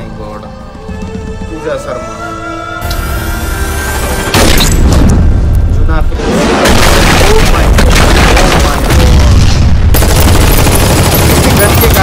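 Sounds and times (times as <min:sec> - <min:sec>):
trailer music: 0:00.0 - 0:07.1.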